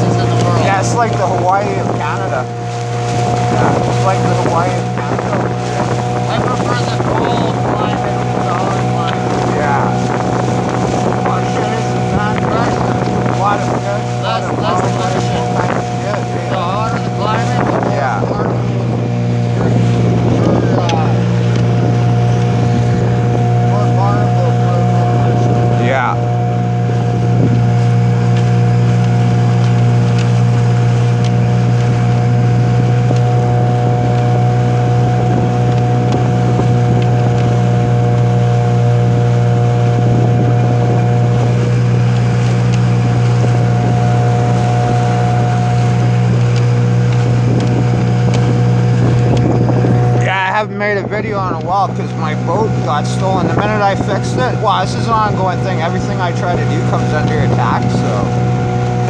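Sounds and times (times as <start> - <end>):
motorboat engine running: 0.0 - 59.0
water rushing past hull: 0.0 - 59.0.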